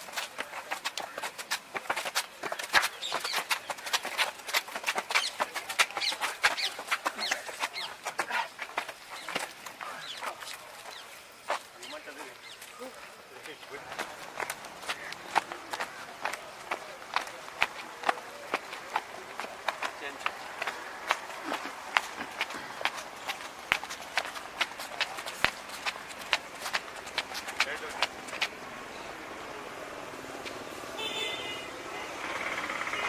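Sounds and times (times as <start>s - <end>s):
trainers slapping on concrete: 0.0s - 31.6s.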